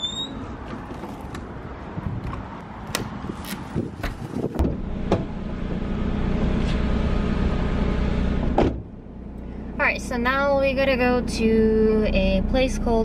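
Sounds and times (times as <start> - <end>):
car engine rumble: 0.0 - 13.0.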